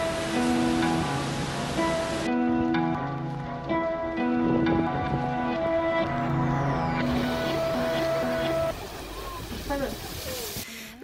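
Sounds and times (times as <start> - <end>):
geyser rushing hiss: 0.0 - 2.3, 7.0 - 11.0
background music with sustained notes: 0.0 - 9.2.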